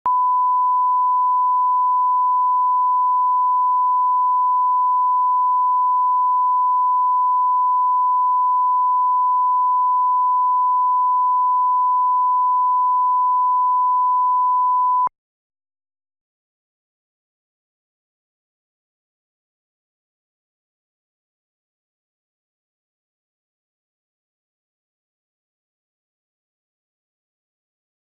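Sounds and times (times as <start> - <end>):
sine test tone: 0.1 - 15.1.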